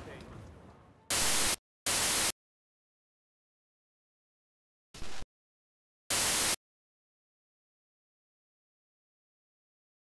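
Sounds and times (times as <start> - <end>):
white noise static bursts: 1.1 - 2.4, 5.0 - 5.3, 6.1 - 6.6.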